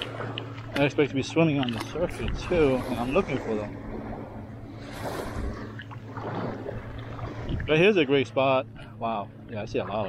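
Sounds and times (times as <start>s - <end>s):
low hum: 0.0s - 10.0s
water sloshing from wading: 0.0s - 10.0s.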